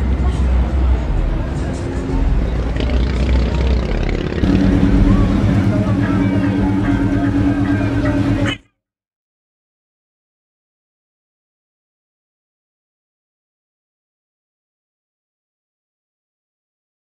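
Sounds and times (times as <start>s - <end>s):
deep vehicle rumble: 0.0s - 8.6s
people talking: 0.0s - 8.6s
steady low drone: 0.6s - 8.6s.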